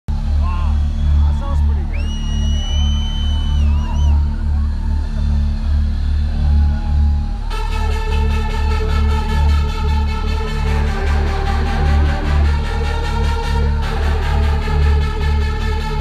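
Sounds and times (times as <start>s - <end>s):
deep bass pulsing: 0.1s - 16.0s
person whistling long note: 0.5s - 4.3s
sustained synth chord: 4.1s - 16.0s.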